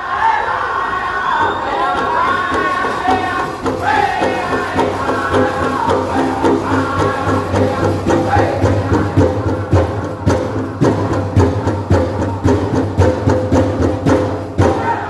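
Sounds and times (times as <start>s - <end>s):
drum group singing: 0.0s - 15.0s
big drum beat: 1.9s - 15.0s.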